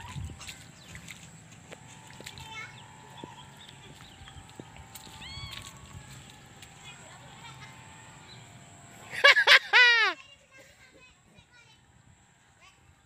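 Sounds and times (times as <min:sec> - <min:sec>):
wind on microphone: 0:00.0 - 0:01.2.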